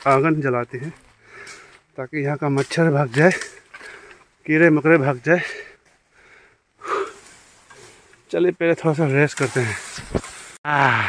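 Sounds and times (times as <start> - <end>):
person breathing hard: 1.2 - 1.9, 5.5 - 7.4.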